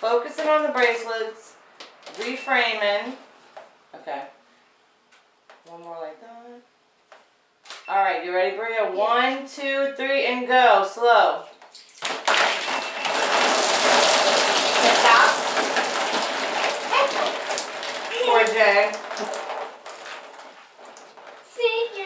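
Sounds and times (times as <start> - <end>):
water splashing onto floor: 11.7 - 21.5.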